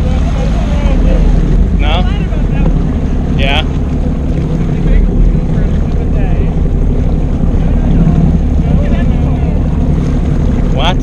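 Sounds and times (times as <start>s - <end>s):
jet ski engine running: 0.0s - 11.0s
water rushing: 0.0s - 11.0s
wind on microphone: 0.0s - 11.0s.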